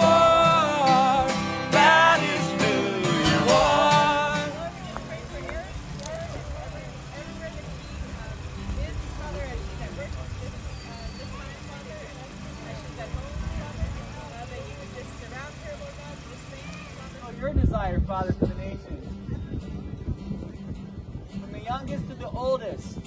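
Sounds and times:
distant voices praying aloud: 0.0 - 17.3
steady low rumble: 0.0 - 18.2.

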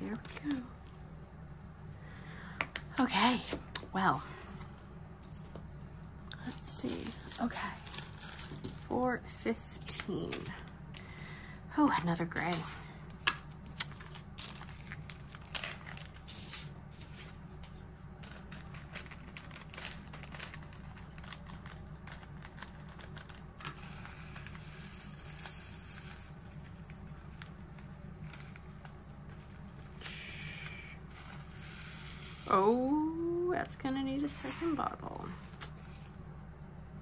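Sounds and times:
steady low hum: 0.0 - 37.0
plastic bag crinkling: 13.6 - 16.5, 17.6 - 24.8.

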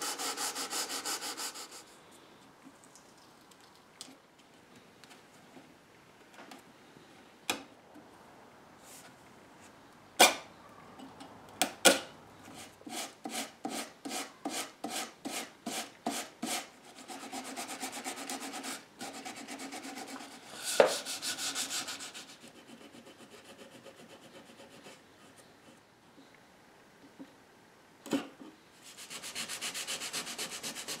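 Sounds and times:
sandpaper rubbing on wood: 0.0 - 1.9, 12.5 - 24.8, 28.8 - 31.0.

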